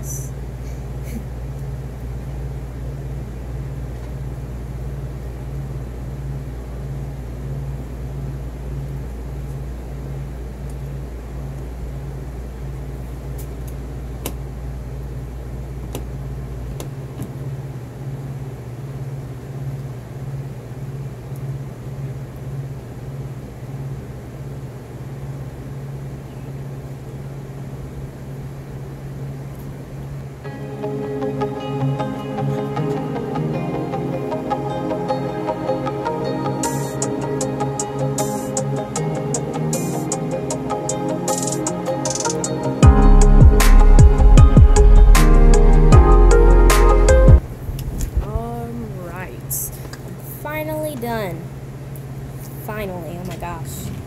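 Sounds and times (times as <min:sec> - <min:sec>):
deep rumble: 0:42.8 - 0:49.1
low pulsing hum: 0:42.8 - 0:50.5.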